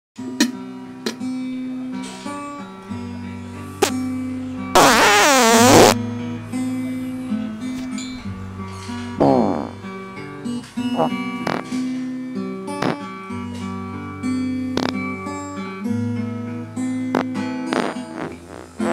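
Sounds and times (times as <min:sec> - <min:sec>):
plucked acoustic guitar music: 0:00.2 - 0:18.9
fart: 0:04.8 - 0:06.0, 0:09.2 - 0:09.8, 0:11.0 - 0:11.8, 0:12.8 - 0:13.1, 0:14.8 - 0:15.0, 0:17.1 - 0:18.9.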